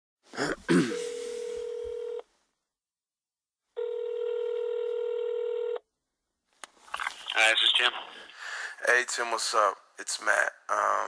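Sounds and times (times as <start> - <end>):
telephone ringback tone: 1.0 - 2.2, 3.8 - 5.8.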